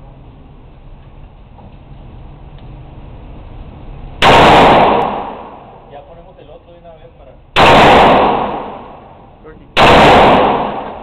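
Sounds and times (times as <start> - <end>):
rifle gunshot with echo: 4.2 - 5.8, 7.6 - 9.2, 9.8 - 11.0.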